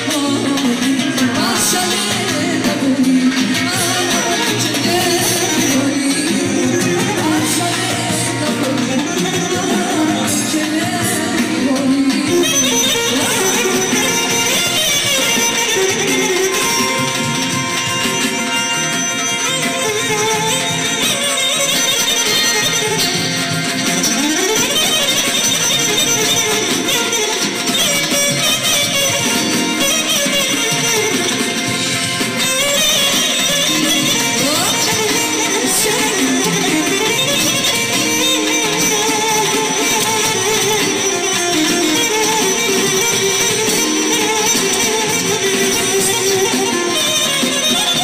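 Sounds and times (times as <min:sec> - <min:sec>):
electric guitar: 0:00.0 - 0:48.0.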